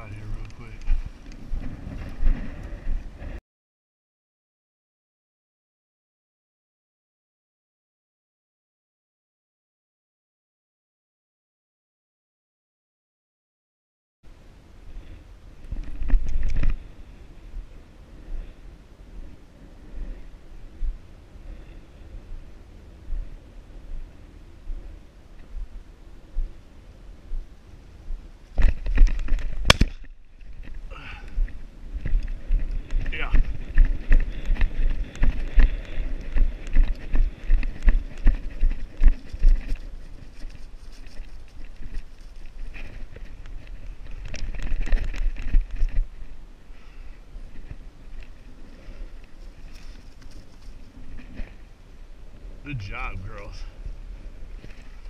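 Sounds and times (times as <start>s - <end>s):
wind on microphone: 0.0s - 3.4s, 14.4s - 55.0s
footsteps through dry grass: 32.3s - 44.1s.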